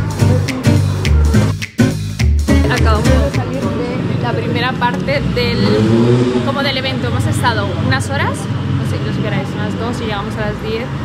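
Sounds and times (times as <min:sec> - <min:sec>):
person talking: 0:02.5 - 0:06.0
vehicle rumble: 0:02.9 - 0:11.0.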